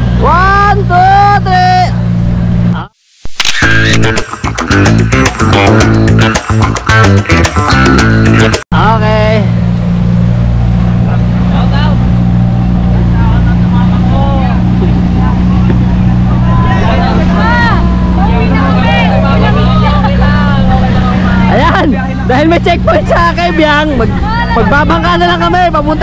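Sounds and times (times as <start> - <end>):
boat engine running: 0.0 - 2.9, 3.6 - 26.0
faint passenger voices: 11.0 - 22.3.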